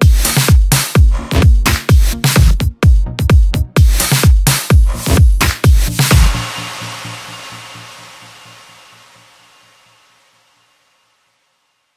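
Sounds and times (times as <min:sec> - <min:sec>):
fast low pulsing: 0:00.0 - 0:08.8
electro house music: 0:00.0 - 0:09.4.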